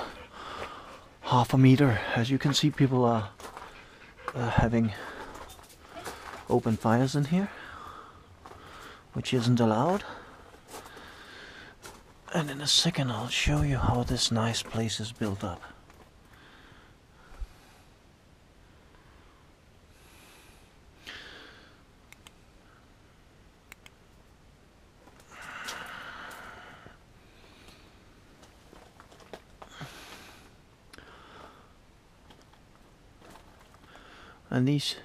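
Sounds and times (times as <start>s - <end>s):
man exhaling breathily: 0.0s - 1.2s, 25.2s - 28.0s, 29.7s - 31.8s
man breathing: 0.0s - 2.2s, 3.3s - 6.5s, 7.4s - 9.2s, 10.0s - 12.0s, 15.6s - 18.0s, 18.7s - 21.9s, 25.2s - 28.9s, 29.6s - 31.9s, 33.7s - 34.5s
faint clicks and scuffs: 32.2s - 34.0s.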